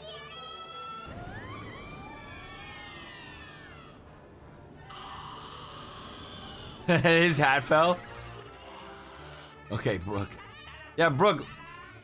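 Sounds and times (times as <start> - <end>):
background music: 2.6 - 12.0
excited cartoon voice: 9.8 - 12.0.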